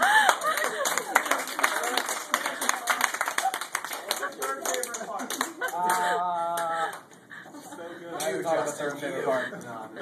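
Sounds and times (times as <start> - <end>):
people clapping: 0.0 - 7.1
voices and laughter: 3.5 - 10.0.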